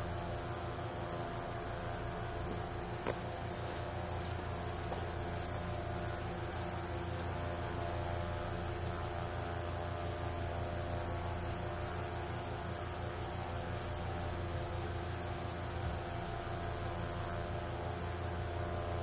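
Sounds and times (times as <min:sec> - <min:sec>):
crickets trilling: 0:00.0 - 0:19.0
low insect chirp pulsing: 0:00.0 - 0:19.0.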